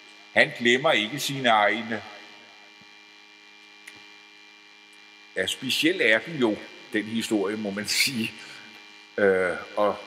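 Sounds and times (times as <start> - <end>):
faint electrical hum: 0.0 - 10.0
small click: 3.8 - 4.1.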